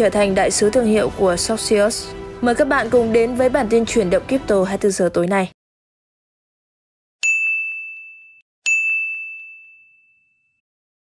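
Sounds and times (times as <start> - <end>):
bright ding: 7.2 - 10.6.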